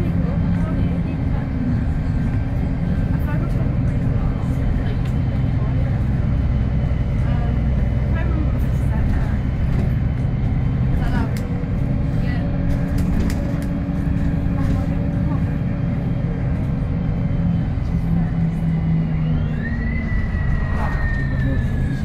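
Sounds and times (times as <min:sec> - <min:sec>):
bus diesel engine running: 0:00.0 - 0:22.0
tyre and road rumble: 0:00.0 - 0:22.0.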